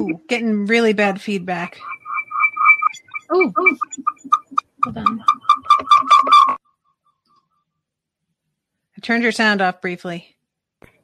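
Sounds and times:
garbled voice: 0:00.0 - 0:00.4, 0:03.0 - 0:05.4
audio feedback chirps: 0:01.0 - 0:06.6.

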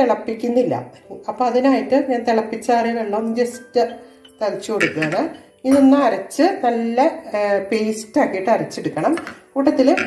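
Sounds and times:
woman speaking: 0:00.0 - 0:10.0
metal bowl clinking: 0:03.2 - 0:06.2, 0:09.0 - 0:10.0.

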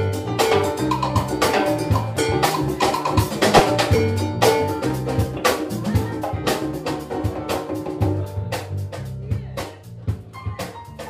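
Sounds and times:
live salsa band playing: 0:00.0 - 0:11.0
drum and hand-percussion hits: 0:00.4 - 0:11.0
electric bass line: 0:02.0 - 0:07.2.

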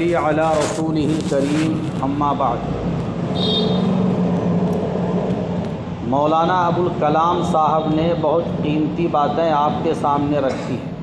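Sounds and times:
background noise rush: 0:00.0 - 0:11.0.

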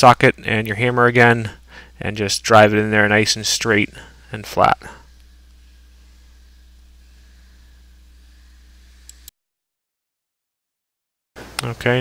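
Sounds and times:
low electrical hum: 0:00.0 - 0:09.3, 0:11.4 - 0:12.0.

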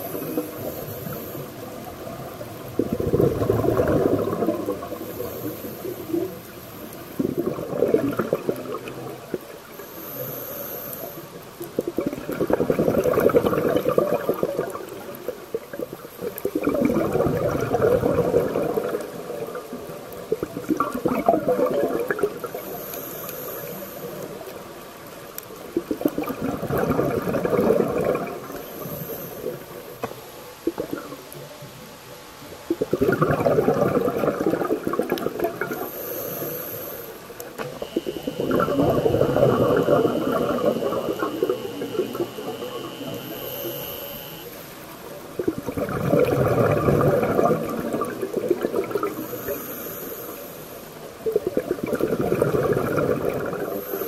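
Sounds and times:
regulator hiss: 0:00.0 - 0:12.0, 0:19.0 - 0:26.3, 0:27.6 - 0:54.0
underwater bubbles gurgling: 0:00.0 - 0:54.0.

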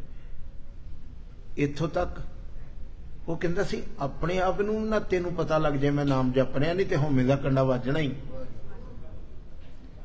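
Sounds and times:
faint low room noise: 0:00.0 - 0:10.0
man speaking: 0:03.2 - 0:09.2.

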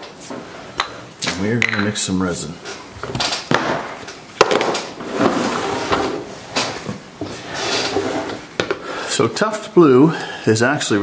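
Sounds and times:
objects knocking on workbench: 0:03.5 - 0:04.8.

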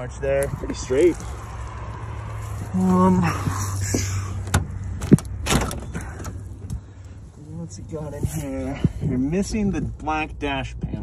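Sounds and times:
van door latch clunking: 0:04.4 - 0:06.7.

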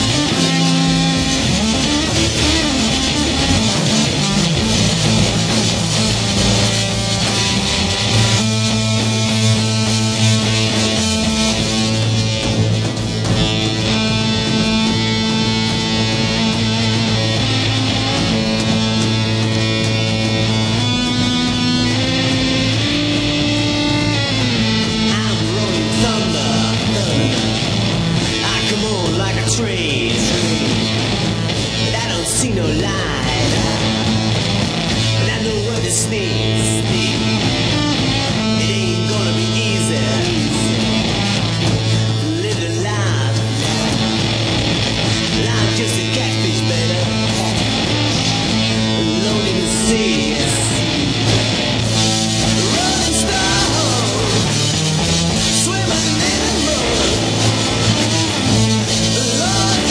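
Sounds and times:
electric guitar playing: 0:00.0 - 0:59.9.

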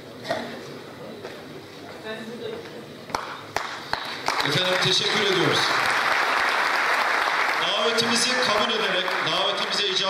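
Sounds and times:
faint voices talking in a hall: 0:00.0 - 0:06.0.

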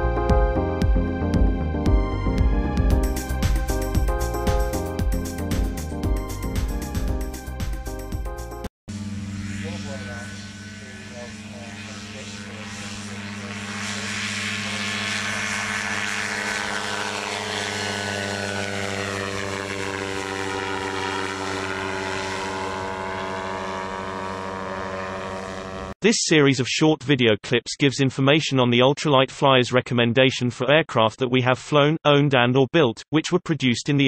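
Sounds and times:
ultralight aircraft engine flying past: 0:08.9 - 0:26.0.

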